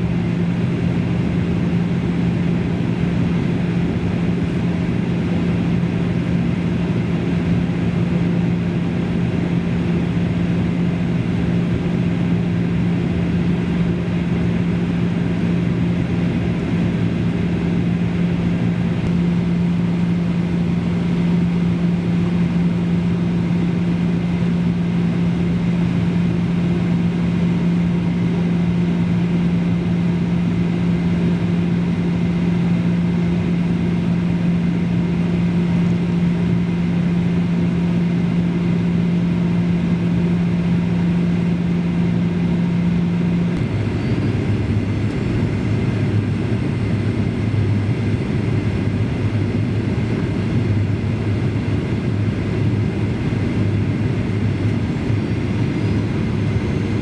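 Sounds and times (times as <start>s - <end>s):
airliner cabin engine noise: 0.0s - 57.0s.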